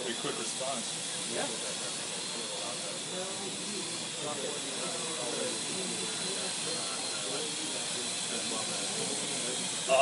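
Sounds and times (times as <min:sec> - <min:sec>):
drone motors and propellers whining: 0:00.0 - 0:10.0.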